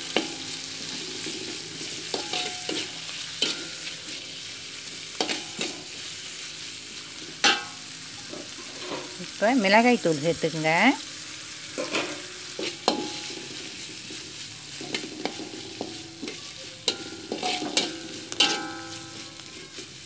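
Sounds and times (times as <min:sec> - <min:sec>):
metal spatula scraping a wok: 0:00.0 - 0:09.8, 0:11.2 - 0:20.0
vegetables sizzling in oil: 0:00.0 - 0:20.0.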